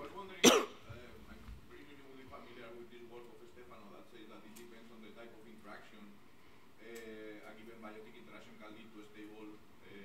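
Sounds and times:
person coughing: 0.4 - 0.8.

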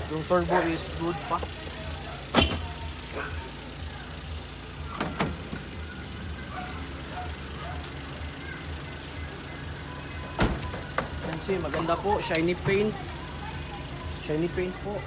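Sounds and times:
steady low engine hum: 0.0 - 15.0.

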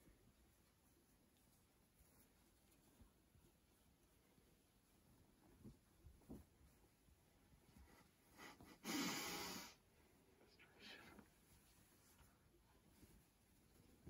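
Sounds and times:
handling of a sheet: 0.0 - 8.3, 11.0 - 14.0.

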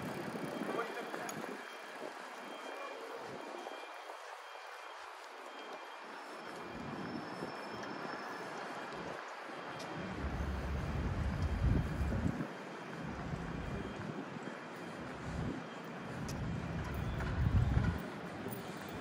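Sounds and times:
traffic noise: 0.0 - 19.0
low rumble: 10.0 - 12.3.

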